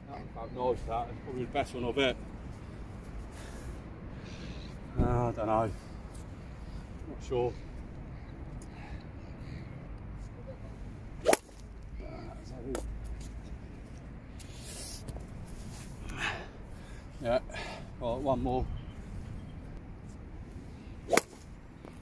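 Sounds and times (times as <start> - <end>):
golf club striking ball: 11.2 - 11.6, 21.1 - 21.4.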